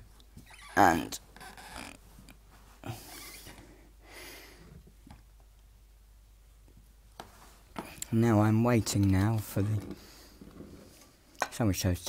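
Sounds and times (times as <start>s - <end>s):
man breathing and sniffing: 2.6s - 4.9s.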